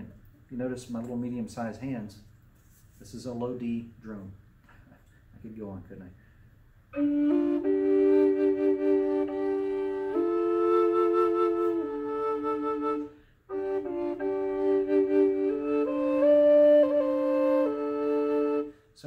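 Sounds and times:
flute drone and melody: 7.0 - 18.8.

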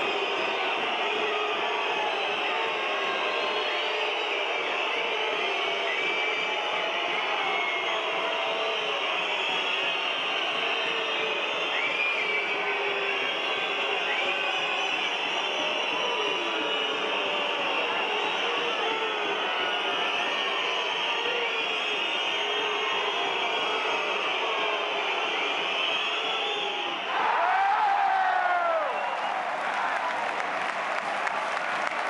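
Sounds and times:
arena crowd din: 0.0 - 32.0.

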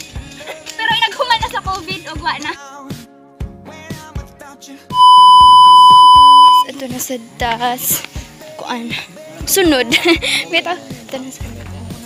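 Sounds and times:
test-tone beep: 5.0 - 6.7.

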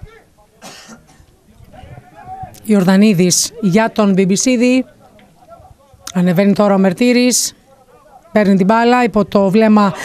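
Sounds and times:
faint background voices: 0.0 - 6.3
person coughing: 0.6 - 1.2.

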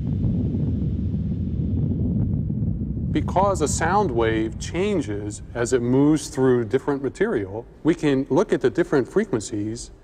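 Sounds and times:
deep rumble: 0.0 - 8.1.

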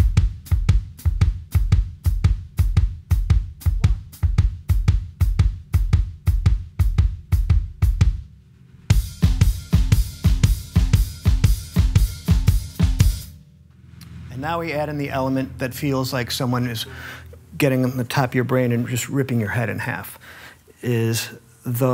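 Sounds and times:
drum kit shuffle groove: 0.0 - 21.1.

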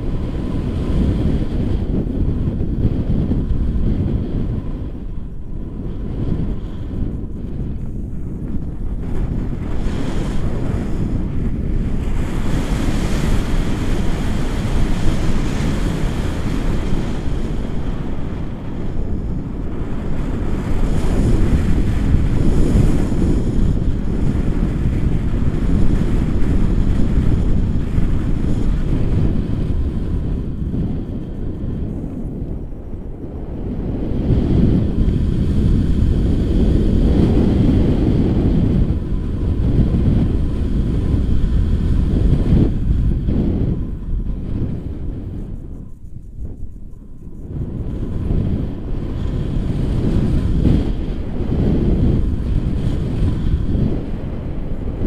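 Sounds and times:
wind rushing over microphone: 0.0 - 55.0.

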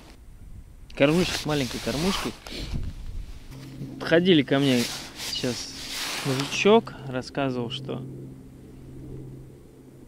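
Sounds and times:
faint low hum: 2.8 - 10.0.

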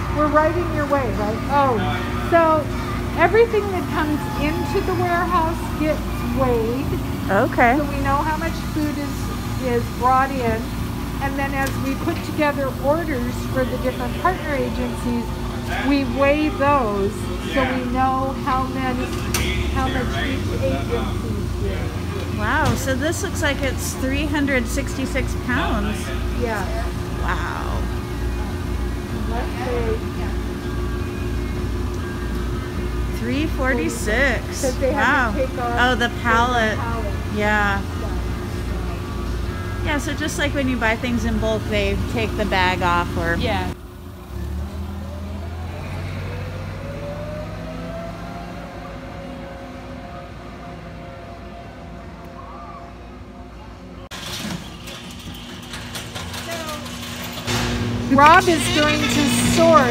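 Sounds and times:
machine hum: 0.0 - 59.9.

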